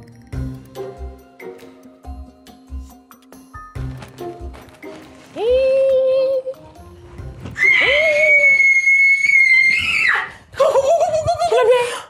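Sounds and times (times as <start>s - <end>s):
woman screaming: 7.6s - 10.4s.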